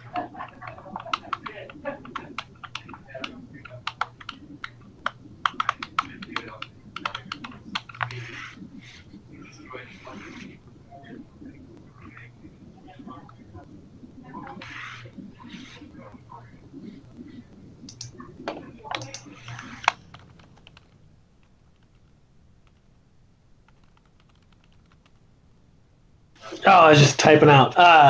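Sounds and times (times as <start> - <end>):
computer keyboard typing: 0.0 - 9.1, 14.4 - 22.9, 23.6 - 25.2.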